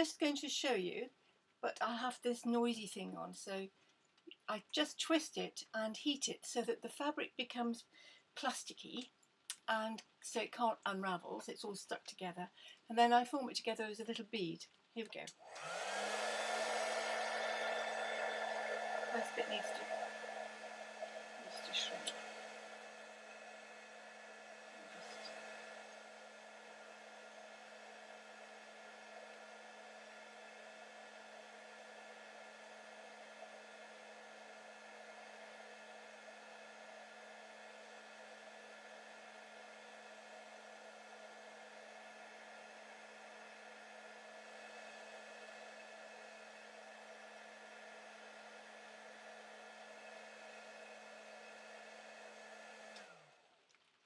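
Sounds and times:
heat gun fan whirring: 0:15.4 - 0:53.4.

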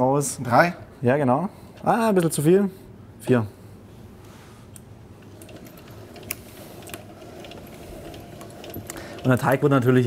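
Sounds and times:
pasta machine gears clicking: 0:05.2 - 0:10.0.

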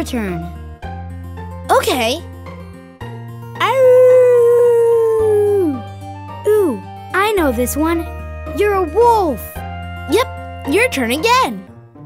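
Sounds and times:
light background music: 0:00.0 - 0:12.0
child imitating wolf howl: 0:03.6 - 0:05.9, 0:06.5 - 0:06.8.

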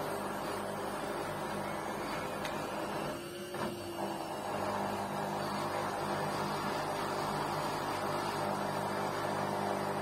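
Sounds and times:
washing machine drum humming: 0:00.0 - 0:10.0
washing machine whine: 0:00.0 - 0:10.0.

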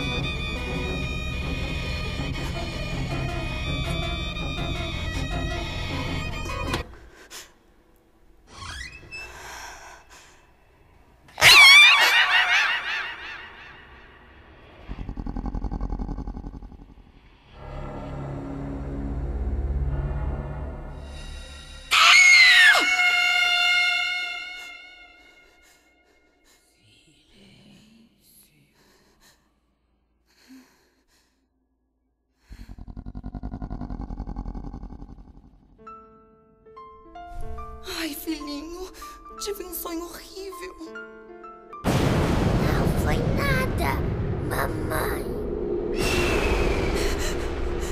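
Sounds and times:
low drone: 0:41.9 - 0:47.9
woman breathing shakily: 0:46.8 - 0:47.9.

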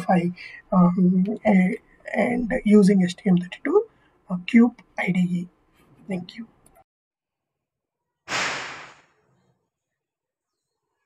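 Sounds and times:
burst of hiss-like noise: 0:08.3 - 0:09.1.

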